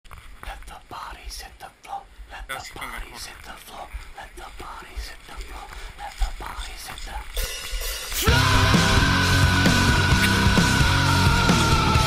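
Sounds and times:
person whispering: 0.4s - 7.4s.

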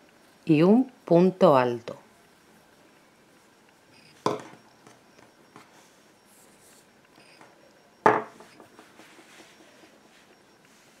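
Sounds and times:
knock on tabletop: 8.0s - 8.4s.

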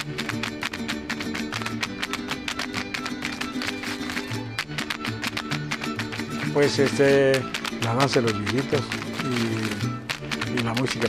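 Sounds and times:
plucked bass line: 0.0s - 11.0s
strummed guitars: 0.0s - 11.0s.

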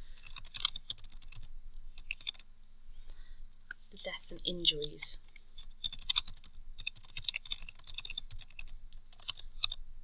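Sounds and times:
typing on computer keyboard: 0.2s - 2.4s, 4.8s - 9.8s.

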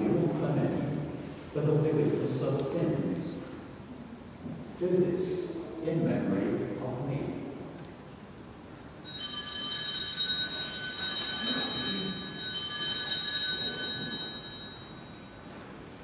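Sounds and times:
altar bells ringing: 9.0s - 15.4s.

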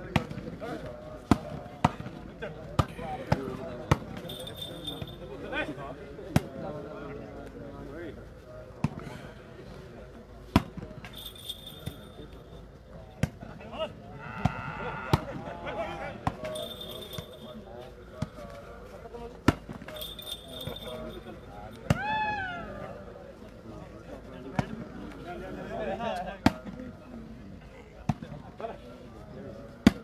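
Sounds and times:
murmur of voices: 0.0s - 30.0s.

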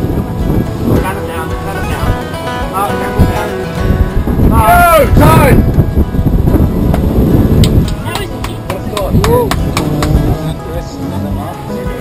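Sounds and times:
rushing water: 0.0s - 12.0s
wind buffeting microphone: 0.0s - 12.0s.

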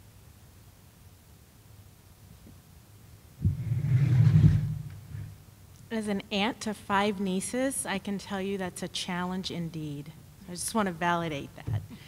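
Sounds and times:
microphone handling rumble: 3.4s - 5.4s.

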